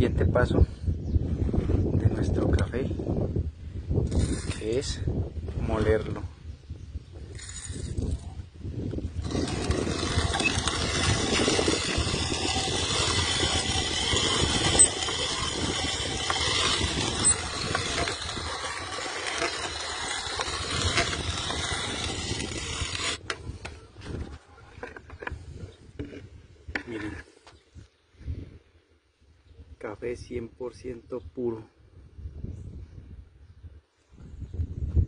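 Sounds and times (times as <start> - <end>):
coffee grinder crunching: 9.2 - 23.3.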